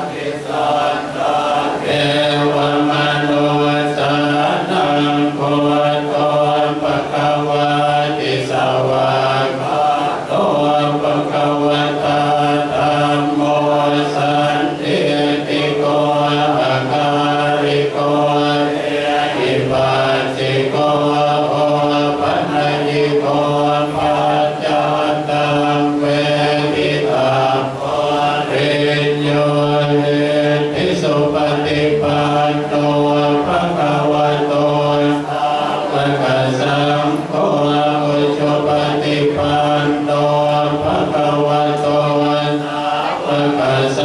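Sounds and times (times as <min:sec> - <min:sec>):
monks chanting in unison: 0:00.0 - 0:44.0.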